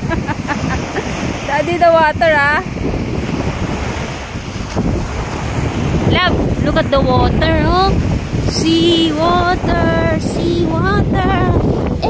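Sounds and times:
waves washing onto beach: 0.0s - 12.0s
wind buffeting microphone: 0.0s - 12.0s.

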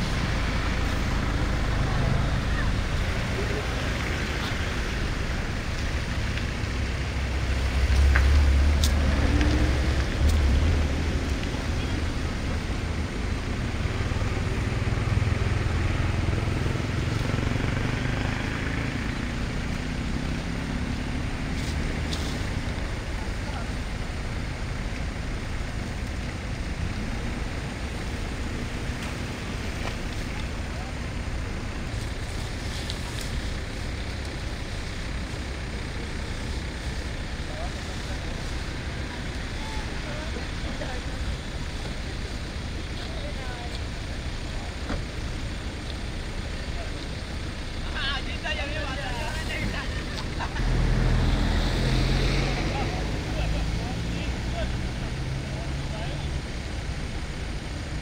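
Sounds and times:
engine rumble: 0.0s - 58.0s.

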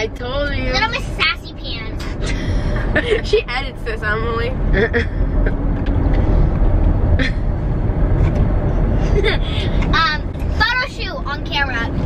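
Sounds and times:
minivan cabin rumble: 0.0s - 12.0s.

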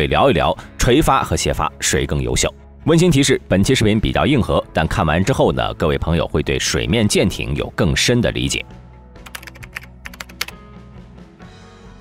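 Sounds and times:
quiet background music: 0.0s - 12.0s
keyboard typing clicks: 9.3s - 10.6s.

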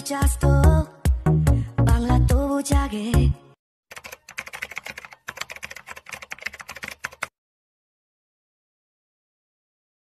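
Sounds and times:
computer keyboard typing: 3.9s - 7.4s.

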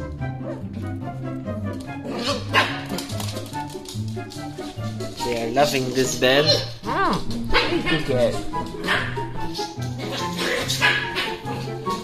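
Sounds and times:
soft background music: 0.0s - 12.0s
dog barking: 2.1s - 3.1s, 7.5s - 11.8s.

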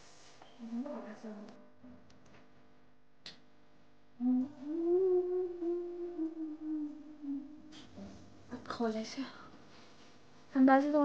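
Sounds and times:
woman humming: 4.2s - 8.2s.

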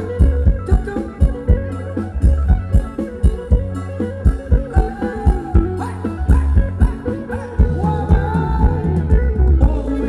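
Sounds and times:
driving drum beat: 0.0s - 10.0s.

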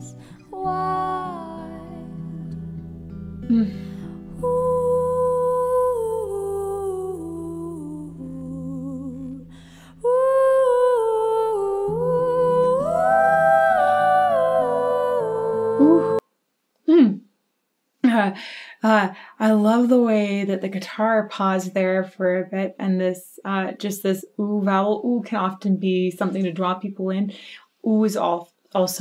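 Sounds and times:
woman singing wordless vocalise: 0.0s - 2.7s, 3.4s - 16.2s
second voice harmonizing: 10.0s - 16.2s.

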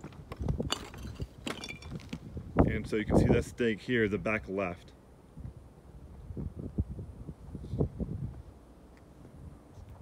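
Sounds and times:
footsteps on rocky ground: 0.0s - 2.4s.

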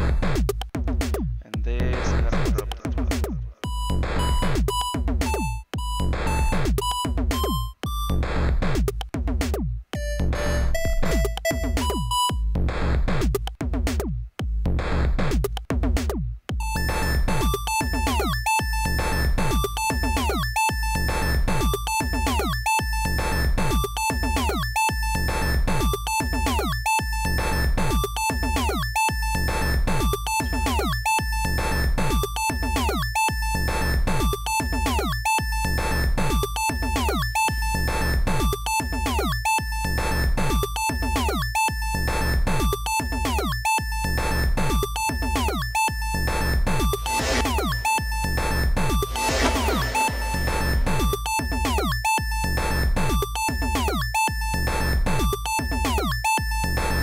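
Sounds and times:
looping chiptune synth music: 0.0s - 14.2s, 14.8s - 57.0s.

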